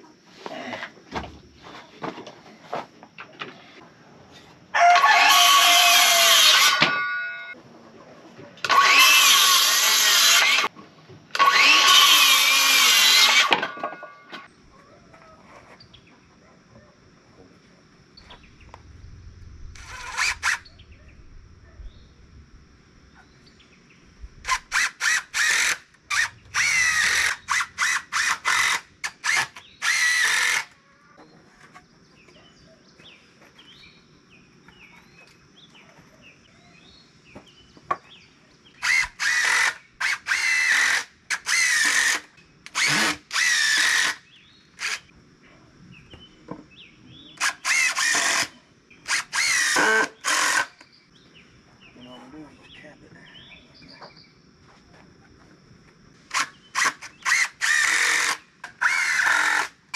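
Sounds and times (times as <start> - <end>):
cordless drill driving screws: 4.9 - 7.0, 8.6 - 10.7, 11.3 - 13.6, 19.8 - 20.6, 24.4 - 30.8, 38.8 - 44.2, 44.8 - 45.1, 47.4 - 50.8, 56.3 - 59.8.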